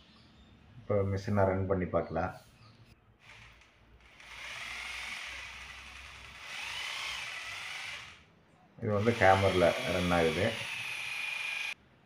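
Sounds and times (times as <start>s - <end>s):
hammer drill motor running: 3.2s - 8.3s, 8.9s - 11.8s.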